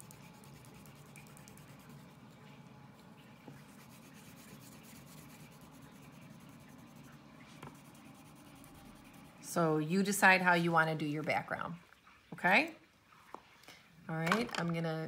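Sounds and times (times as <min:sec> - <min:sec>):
crayon rubbing on paper: 0:03.6 - 0:07.0, 0:07.6 - 0:09.5.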